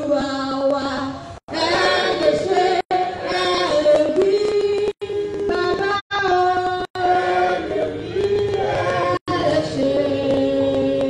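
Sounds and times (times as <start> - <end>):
congregation singing a worship song: 1.5 - 11.0.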